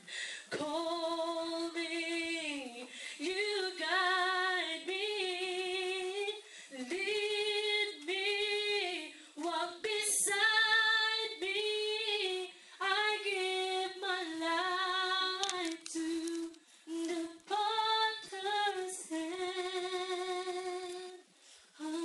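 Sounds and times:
woman singing a worship song: 0.0s - 22.0s.

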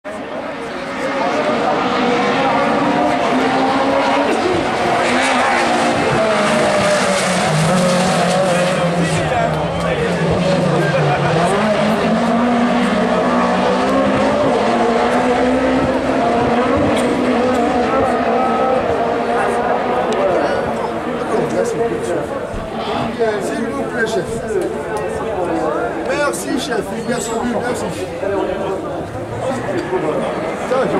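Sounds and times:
racing car engines revving: 0.1s - 30.9s.

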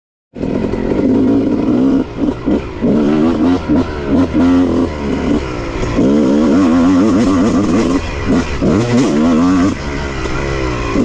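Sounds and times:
dirt bike engine revving: 0.4s - 11.0s.

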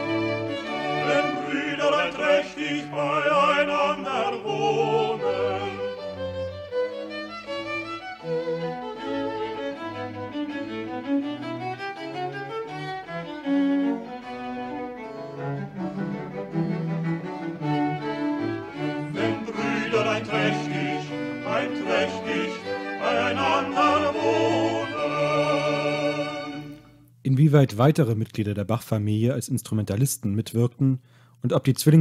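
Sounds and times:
baroque string ensemble: 0.0s - 27.0s.

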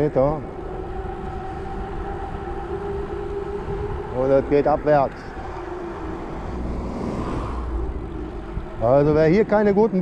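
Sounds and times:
wind rushing on microphone: 0.0s - 10.0s
car passing close by: 4.4s - 9.5s.

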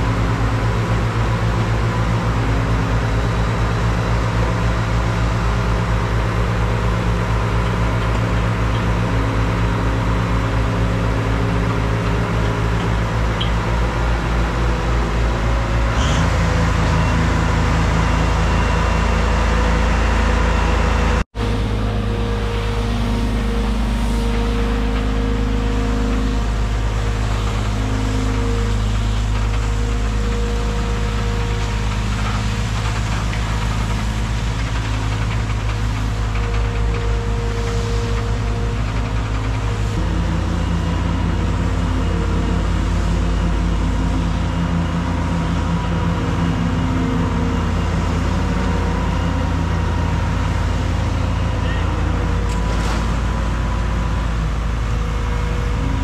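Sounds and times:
trailer engine running: 0.0s - 56.0s.

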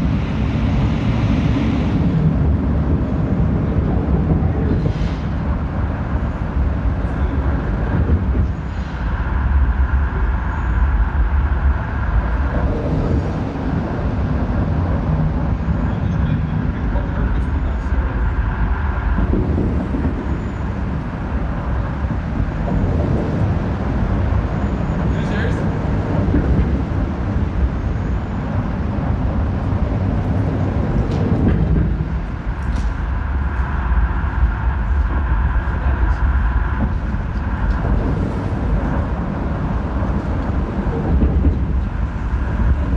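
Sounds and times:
deep rumble: 0.0s - 42.9s.

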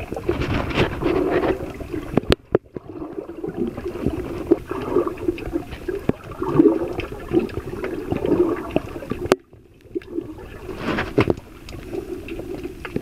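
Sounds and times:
water sloshing underwater: 0.0s - 13.0s.

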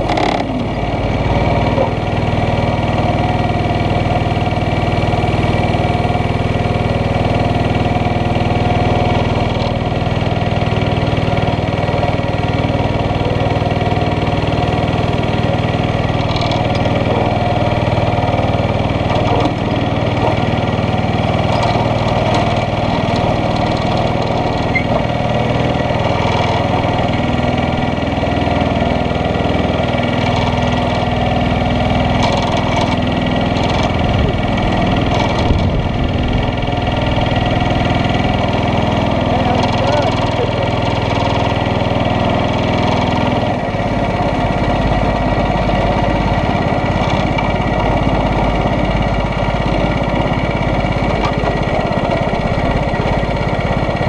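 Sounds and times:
go-kart engine idling: 0.0s - 54.0s.

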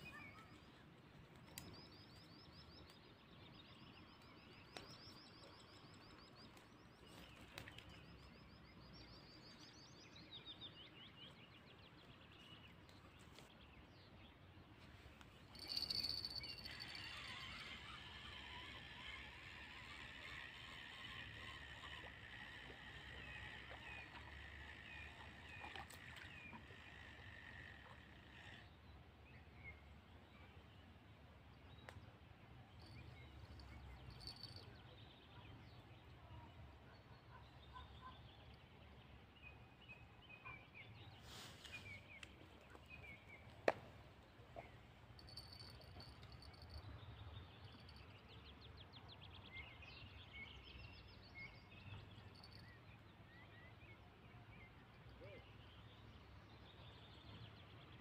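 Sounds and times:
chorus of bird calls and chirps: 14.9s - 30.7s
birds trilling: 15.6s - 25.4s.

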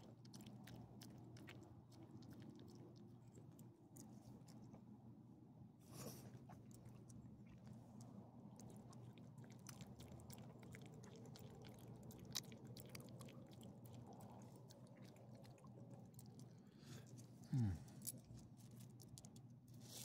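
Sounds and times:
dog chewing: 0.0s - 4.9s, 6.4s - 17.4s.

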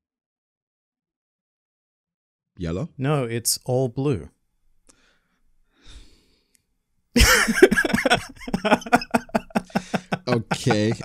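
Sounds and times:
man's faint breath out: 4.9s - 6.5s.

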